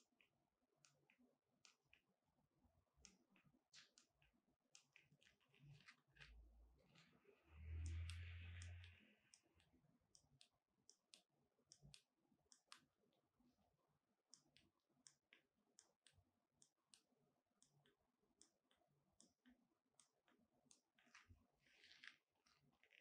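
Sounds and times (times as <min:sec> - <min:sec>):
faint small clicks: 0:04.8 - 0:12.9.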